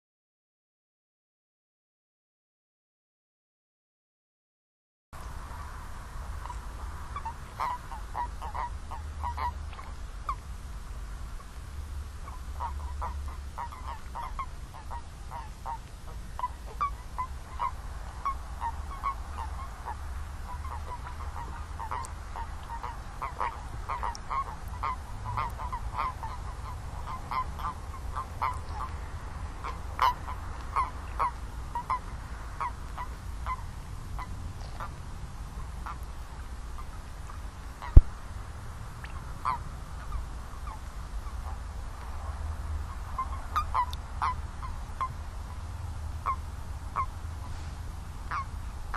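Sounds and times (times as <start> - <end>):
steady low rumble: 5.2 - 48.9
toads croaking: 6.2 - 10.4, 12.1 - 35.0, 42.9 - 45.6.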